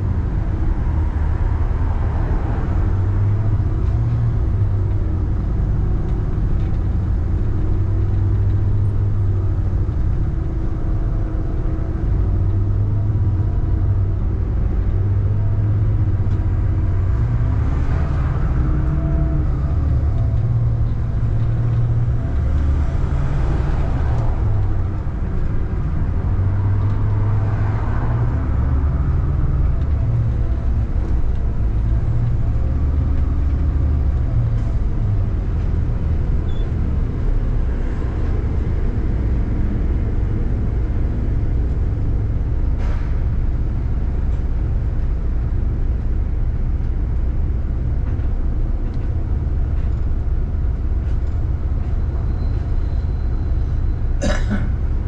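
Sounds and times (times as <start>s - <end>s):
bus engine rumble: 0.0s - 55.0s
road noise: 0.0s - 55.0s.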